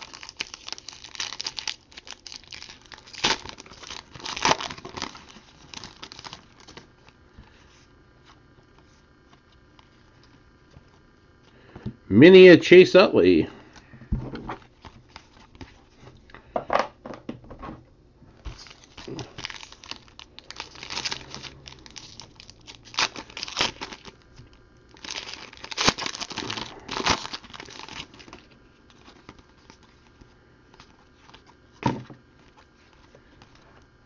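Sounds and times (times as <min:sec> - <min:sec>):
foil wrapper crinkling: 0:00.0 - 0:07.2, 0:18.5 - 0:34.0.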